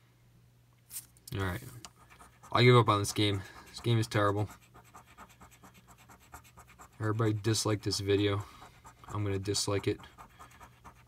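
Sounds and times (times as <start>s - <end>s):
coin scraping scratch card: 2.0s - 11.0s.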